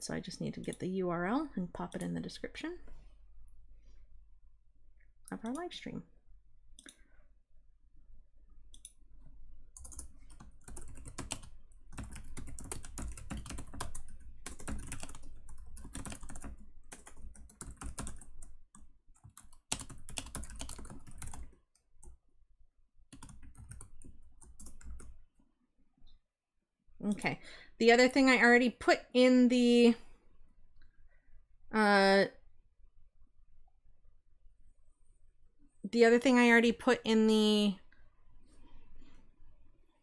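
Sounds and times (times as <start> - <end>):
typing on computer keyboard: 9.8 - 22.2, 23.1 - 25.2.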